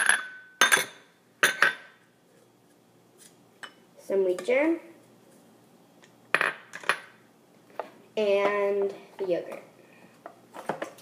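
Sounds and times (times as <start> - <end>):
glass bowl clinking on counter: 0.0 - 1.9.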